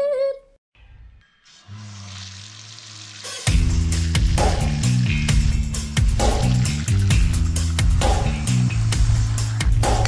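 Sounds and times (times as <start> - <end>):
water running from tap: 1.5 - 8.0.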